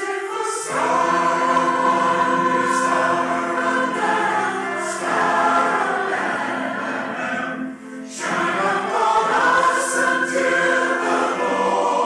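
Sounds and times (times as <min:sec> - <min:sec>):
choir hissing consonants: 0:00.0 - 0:12.0
mixed choir singing chords: 0:00.0 - 0:12.0.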